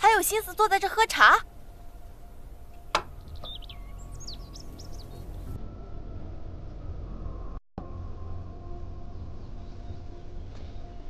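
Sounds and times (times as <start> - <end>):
birds chirping: 0.0 - 5.6
faint background music: 0.0 - 11.0.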